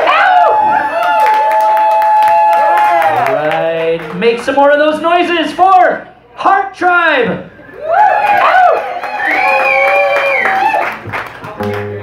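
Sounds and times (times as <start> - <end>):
long high whoop: 0.0 - 3.3
audience cheering and whooping: 0.0 - 3.6, 7.7 - 11.1
clapping: 8.7 - 11.9.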